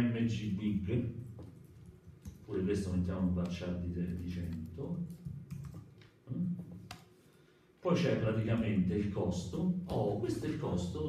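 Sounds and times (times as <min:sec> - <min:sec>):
computer keyboard keystrokes: 0:04.1 - 0:06.1.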